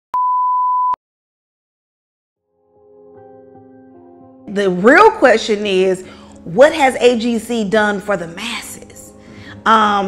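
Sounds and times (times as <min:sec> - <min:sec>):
electronic test tone beep: 0:00.1 - 0:01.0.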